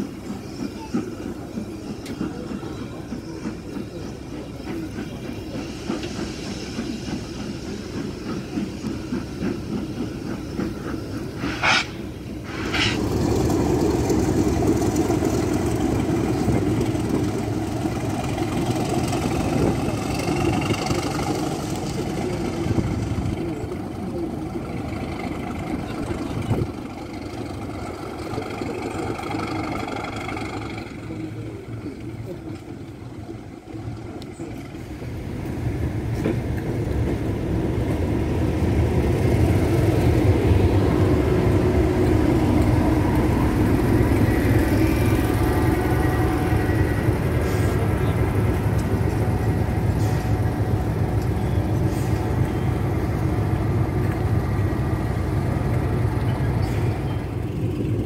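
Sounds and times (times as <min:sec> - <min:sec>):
locomotive running rumble: 0:00.0 - 0:58.0.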